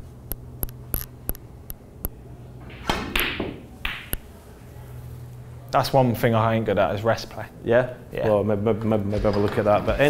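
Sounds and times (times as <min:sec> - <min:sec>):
snooker cue and balls clicking: 0:02.6 - 0:04.3.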